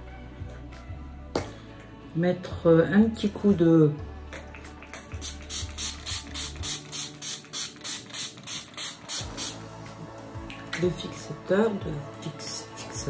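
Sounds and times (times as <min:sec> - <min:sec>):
spray bottle hissing spritzes: 0:04.5 - 0:09.7.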